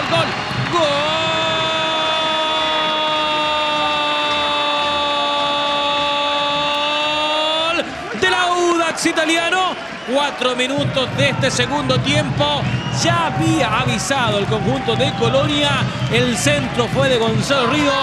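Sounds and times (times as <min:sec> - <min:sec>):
excited shouting: 0:00.0 - 0:10.8, 0:17.5 - 0:18.0
commentator's goal cry: 0:13.0 - 0:18.0.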